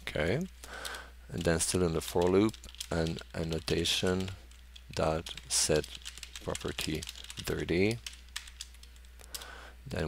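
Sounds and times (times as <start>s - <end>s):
low steady hum: 0.0s - 10.0s
computer keyboard keystrokes: 0.8s - 9.5s.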